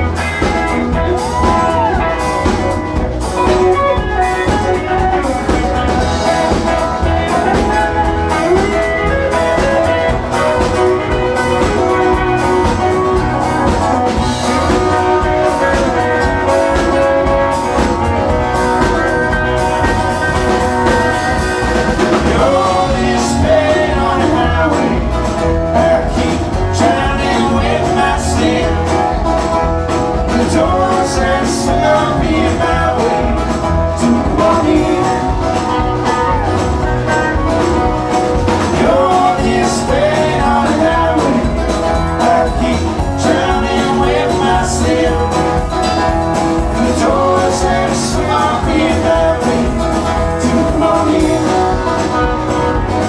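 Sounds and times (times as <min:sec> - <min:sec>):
bass: 0:00.0 - 0:53.0
lead line with sliding notes: 0:00.0 - 0:53.0
steady drum beat: 0:00.0 - 0:53.0
strummed guitar: 0:00.0 - 0:53.0.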